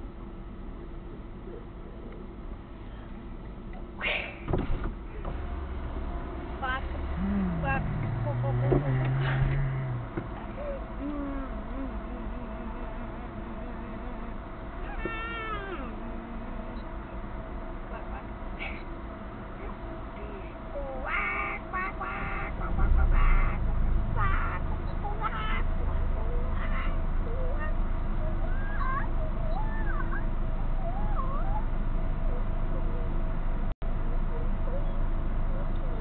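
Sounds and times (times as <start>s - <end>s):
car engine idling: 0.0s - 36.0s
low rumble: 5.9s - 20.8s
bird calling in harsh bursts: 21.1s - 22.6s.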